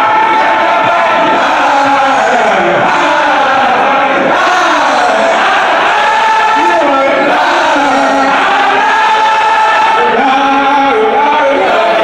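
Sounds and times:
many voices chanting: 0:00.0 - 0:12.0.

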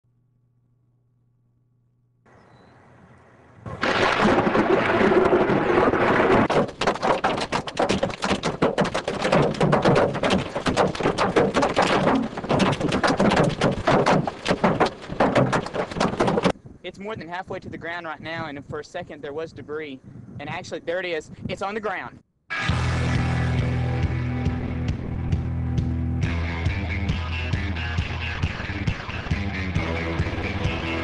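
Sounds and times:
hail clattering: 0:03.8 - 0:16.5.

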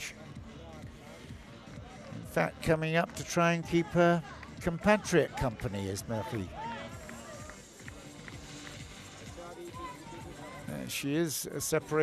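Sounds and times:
stadium public-address music: 0:00.0 - 0:12.0.

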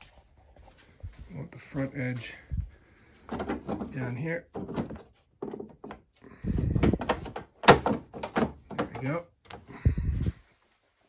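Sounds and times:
plastic panel knocks and clunks: 0:03.3 - 0:09.2.

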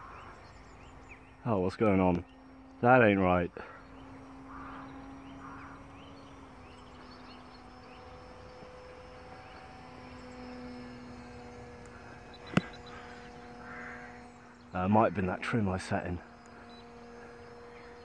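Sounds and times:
model plane motor humming: 0:00.0 - 0:18.0.

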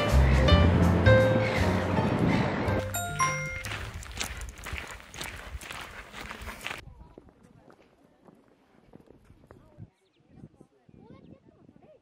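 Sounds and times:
footsteps walking: 0:02.8 - 0:09.2.

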